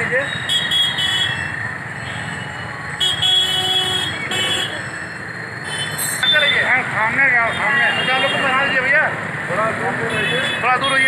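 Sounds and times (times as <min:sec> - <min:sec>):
busy street noise: 0:00.0 - 0:11.0
people talking: 0:06.2 - 0:11.0.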